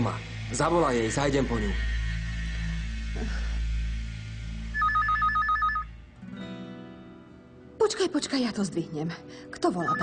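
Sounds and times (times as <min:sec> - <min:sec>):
telephone two-tone ringing: 0:04.8 - 0:05.9.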